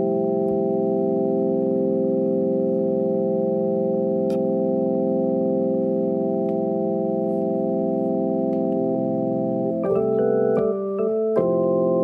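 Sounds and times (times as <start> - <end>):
electronic keyboard organ chord: 0.0 - 12.0.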